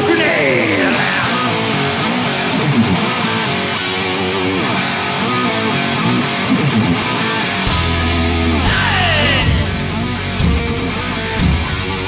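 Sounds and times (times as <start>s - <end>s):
electric guitar with bent notes: 0.0s - 12.0s.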